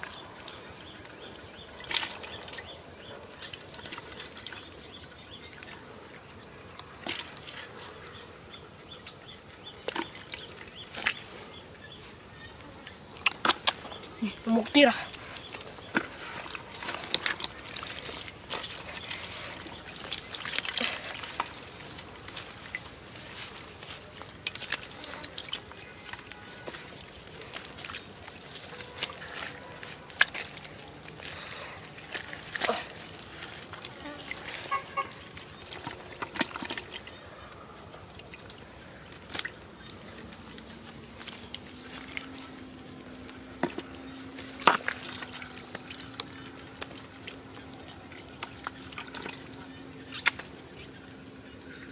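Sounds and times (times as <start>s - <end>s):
hands splashing in muddy water: 13.2s - 37.2s.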